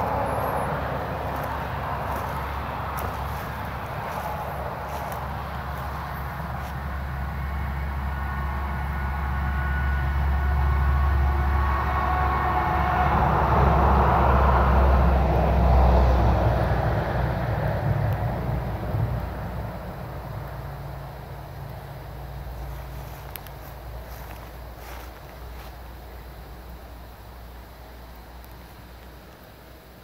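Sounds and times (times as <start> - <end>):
passing vehicle rumble: 0.0 - 30.0.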